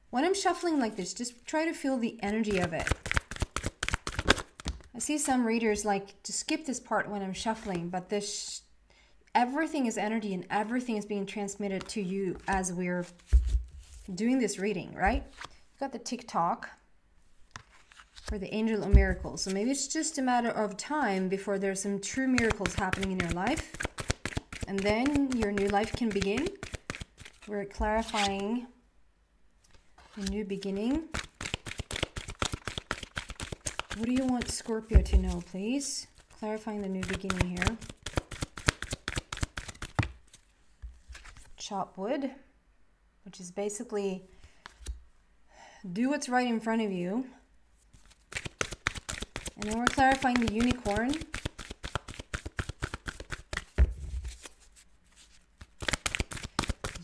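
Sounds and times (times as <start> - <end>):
cards being shuffled: 2.4 - 4.9, 11.8 - 14.1, 15.1 - 15.6, 17.5 - 18.4, 22.2 - 28.5, 29.7 - 41.6, 44.5 - 45.0, 47.9 - 57.0.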